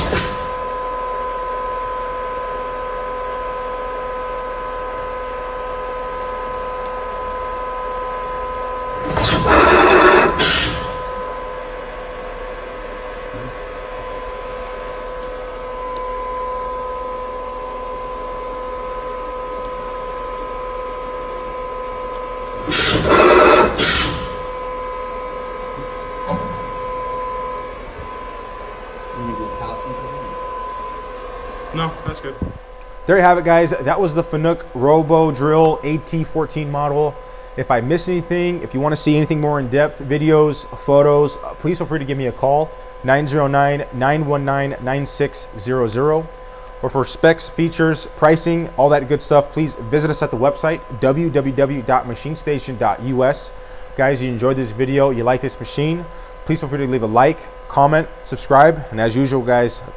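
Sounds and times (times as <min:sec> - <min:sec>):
machine whining: 0:00.0 - 0:59.9
loud hissing bursts: 0:09.0 - 0:11.1, 0:22.6 - 0:24.5.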